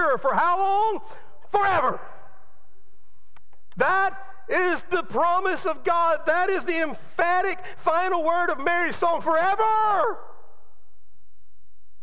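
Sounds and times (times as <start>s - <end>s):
man shouting with echo: 0.0s - 2.5s, 3.8s - 10.6s.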